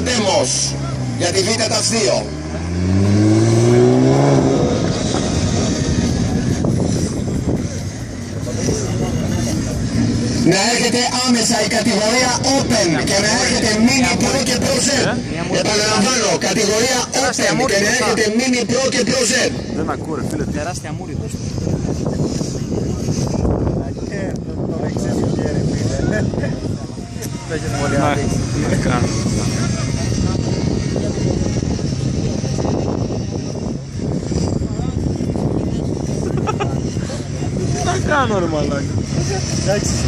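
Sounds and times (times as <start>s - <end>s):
car engine revving: 0.0s - 40.0s
crowd chatter: 0.0s - 40.0s
wind buffeting microphone: 2.6s - 10.7s, 19.5s - 40.0s.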